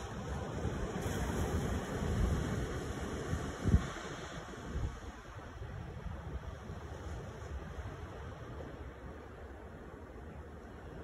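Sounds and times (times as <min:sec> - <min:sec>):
waves splashing against rocks: 0:00.0 - 0:08.9
wind rumbling on microphone: 0:00.0 - 0:11.0.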